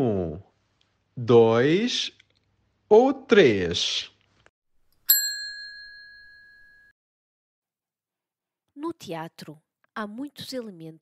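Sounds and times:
service bell ringing: 5.1 - 6.9.

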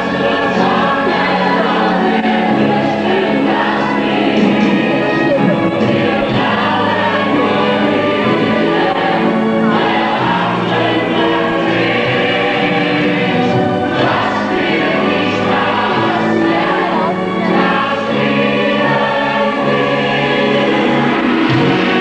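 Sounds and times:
chorus singing held chords: 0.0 - 22.0
orchestral accompaniment: 0.0 - 22.0.

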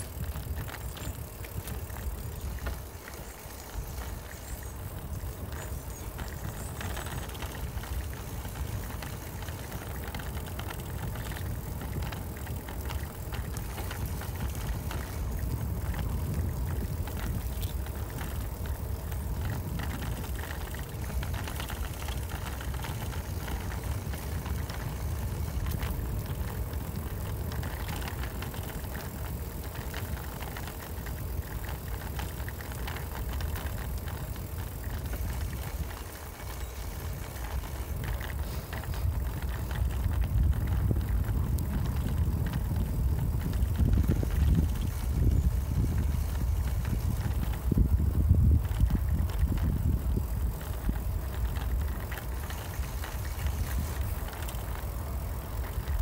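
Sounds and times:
bicycle tyres rumbling on tarmac: 0.0 - 56.0
wind on microphone: 0.0 - 56.0.

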